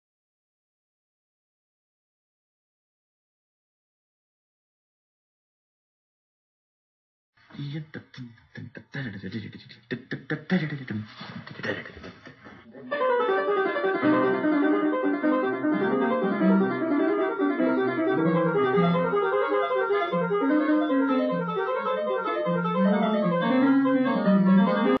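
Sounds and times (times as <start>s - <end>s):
piano music: 12.7s - 25.0s.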